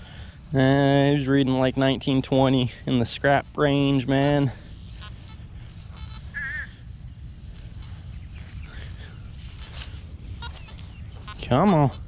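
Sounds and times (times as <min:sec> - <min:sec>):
steady low rumble: 0:00.0 - 0:12.0
metal detector beeps: 0:04.8 - 0:06.7, 0:10.4 - 0:12.0.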